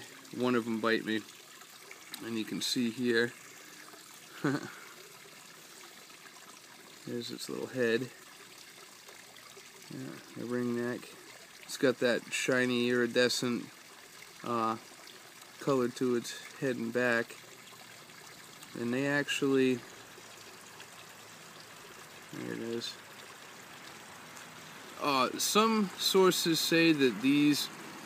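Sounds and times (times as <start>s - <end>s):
faint steady hiss: 0.0s - 28.0s
faint steady rushing noise: 21.2s - 28.0s.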